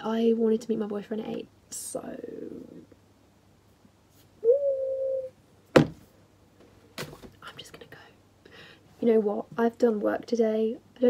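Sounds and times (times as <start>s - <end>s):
woman humming: 4.4s - 5.3s
sharp knock: 5.7s - 6.0s
faint whispering: 7.4s - 8.2s.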